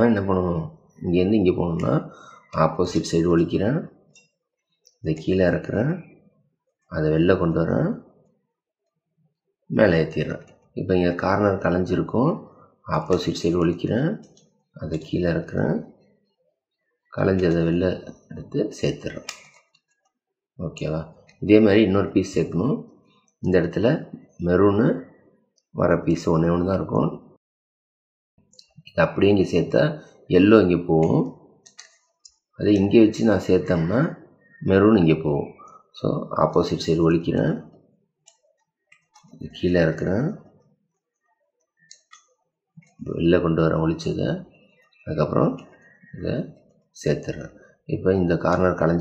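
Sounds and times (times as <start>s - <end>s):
person speaking: 0.0s - 3.9s, 5.0s - 6.1s, 9.7s - 16.0s, 17.2s - 19.6s, 20.6s - 25.1s, 28.6s - 32.0s, 32.6s - 37.7s, 39.0s - 40.5s, 42.8s - 49.0s.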